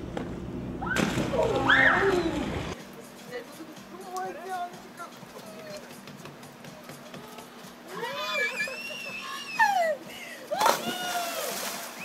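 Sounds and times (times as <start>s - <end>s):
high-pitched squealing cry: 7.9s - 10.0s
body splashing into pool: 10.6s - 12.0s.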